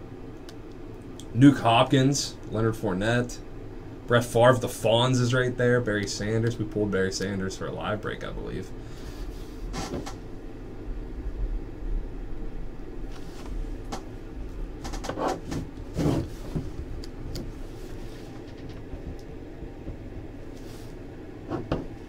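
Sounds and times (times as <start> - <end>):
steady low hum: 0.0 - 22.0
knocks and handling noises: 14.8 - 20.3, 21.5 - 22.0.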